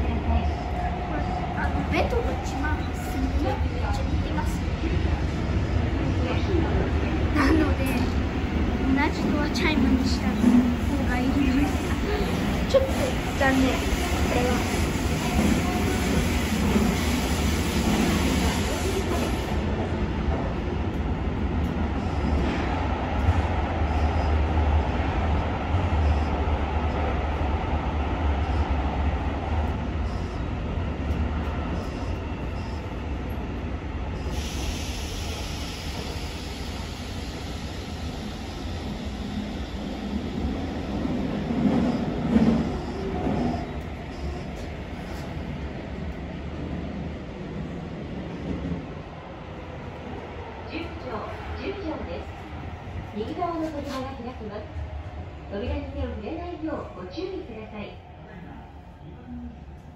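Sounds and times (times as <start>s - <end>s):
train rumble on rails: 0.0s - 59.9s.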